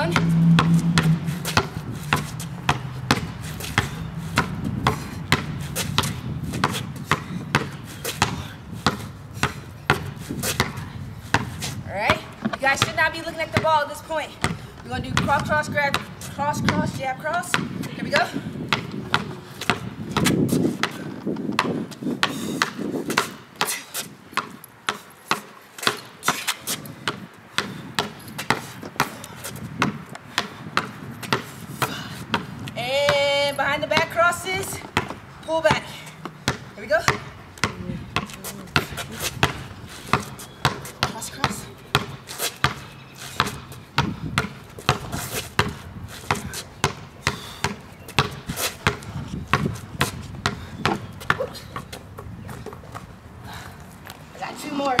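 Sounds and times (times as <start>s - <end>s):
basketball bouncing on concrete: 0.0s - 55.0s.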